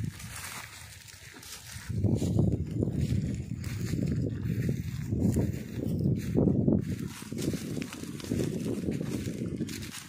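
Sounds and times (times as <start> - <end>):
straw rustling and crackling: 0.0 - 10.0.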